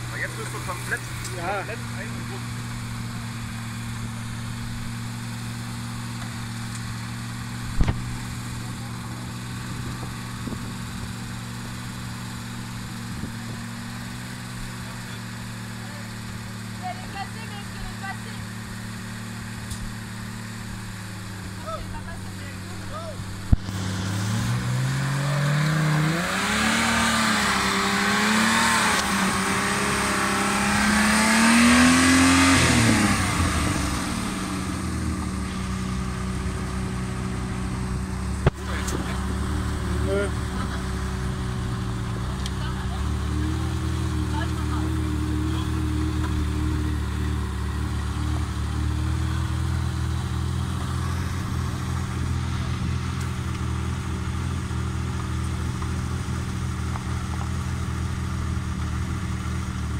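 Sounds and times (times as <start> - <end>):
truck engine revving: 0.0 - 59.9.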